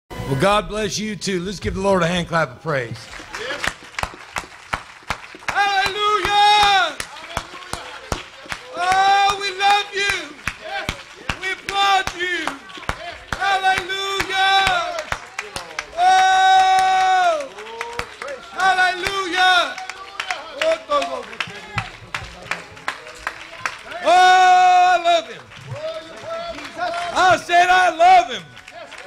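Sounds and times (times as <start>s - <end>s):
congregation clapping rhythmically: 2.7s - 29.0s.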